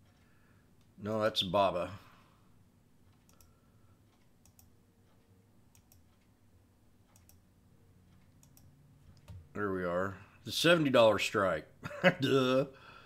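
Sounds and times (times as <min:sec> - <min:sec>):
computer mouse clicks: 0:03.1 - 0:06.3, 0:07.0 - 0:07.4, 0:08.1 - 0:09.5.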